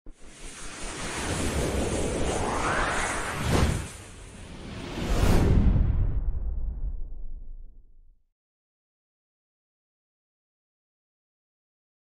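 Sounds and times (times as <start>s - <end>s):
rushing whoosh: 0.2s - 7.2s.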